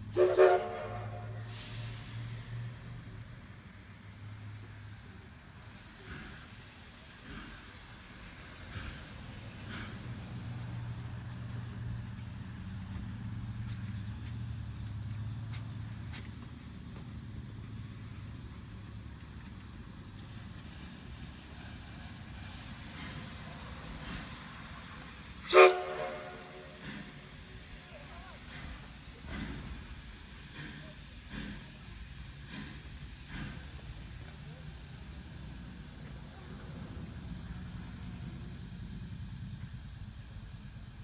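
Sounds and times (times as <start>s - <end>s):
steam locomotive humming: 0.0s - 41.0s
faint exhaust beats: 3.0s - 41.0s.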